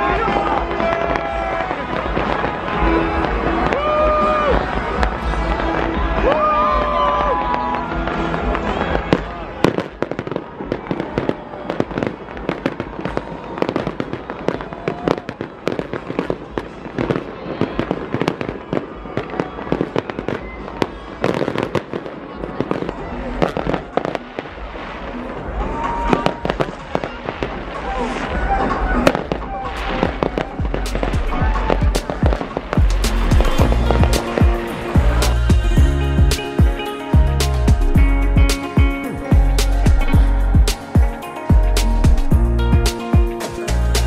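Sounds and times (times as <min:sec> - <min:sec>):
music: 0:00.0 - 0:11.0, 0:23.4 - 0:44.0
crowd voices: 0:00.0 - 0:44.0
fireworks bangs and pops: 0:00.0 - 0:44.0.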